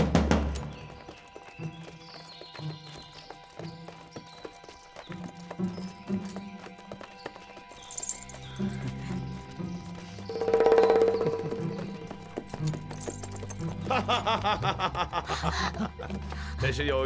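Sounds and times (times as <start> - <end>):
background music: 0.0 - 17.0
horse hooves clip-clopping on dirt: 0.0 - 17.0.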